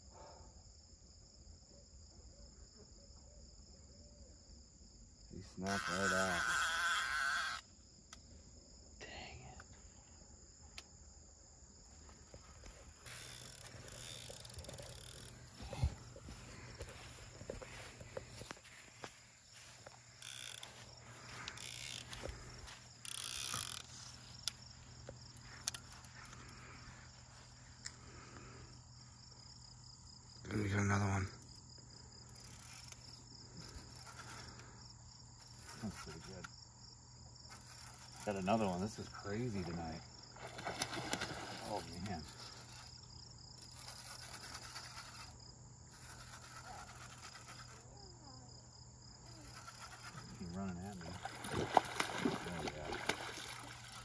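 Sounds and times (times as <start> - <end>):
crickets chirping: 0.0 - 54.0.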